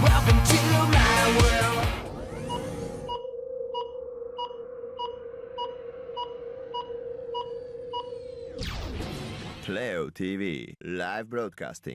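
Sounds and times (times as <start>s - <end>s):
steady held electronic tone: 2.1s - 8.8s
short electronic beeps: 2.3s - 8.5s.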